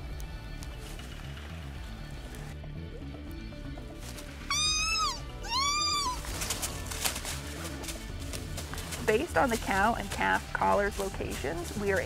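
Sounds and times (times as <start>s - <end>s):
background music: 0.0s - 12.0s
elk calf bleating: 4.4s - 6.4s.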